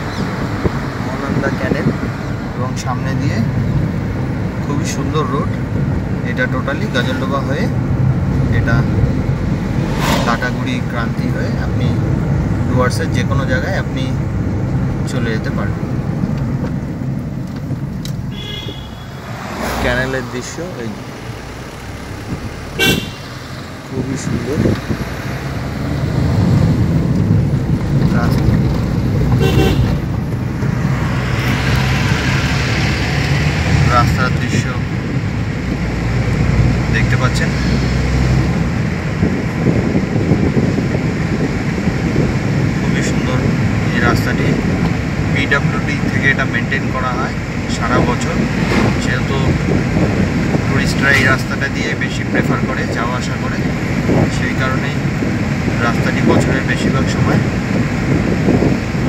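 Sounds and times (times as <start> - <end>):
car engine and tyre hum: 0.0 - 59.0
short sharp sounds: 9.7 - 10.6.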